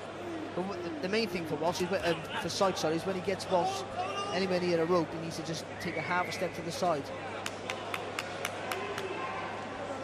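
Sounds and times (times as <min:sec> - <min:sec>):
arena crowd hubbub: 0:00.0 - 0:10.0.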